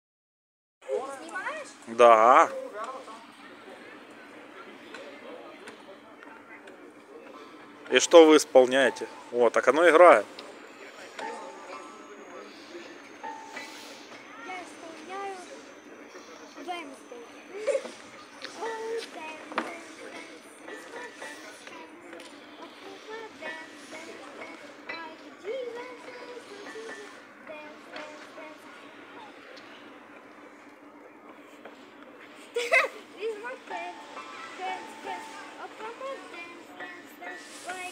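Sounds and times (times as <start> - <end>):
faint distant voices: 0.8 - 37.9.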